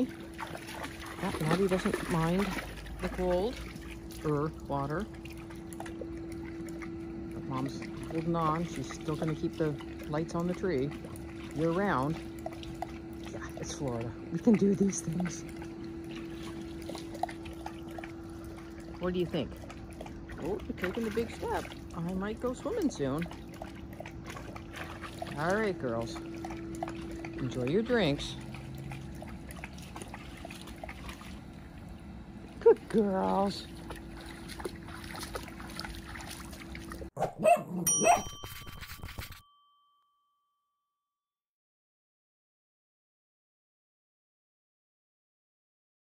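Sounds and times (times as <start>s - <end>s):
trickle of water: 0.0s - 37.1s
dog lapping water: 0.0s - 39.2s
steady low hum: 0.0s - 39.5s
cartoon dog barks: 37.2s - 38.4s
bright bell ding: 37.8s - 40.9s.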